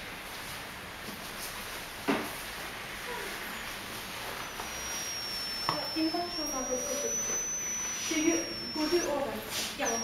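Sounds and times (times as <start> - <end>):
high-pitched electronic squeal: 3.5 - 10.0.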